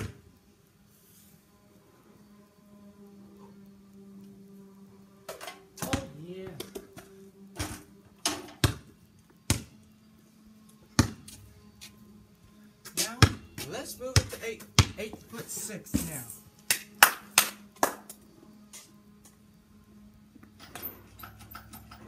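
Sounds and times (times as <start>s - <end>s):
ball hitting hoop rim: 5.8s - 6.9s, 7.6s - 8.9s, 11.0s - 11.2s, 13.2s - 13.4s, 14.2s - 15.0s
basketball bouncing on concrete: 5.8s - 7.8s, 8.5s - 9.8s, 10.9s - 11.4s, 12.9s - 15.3s.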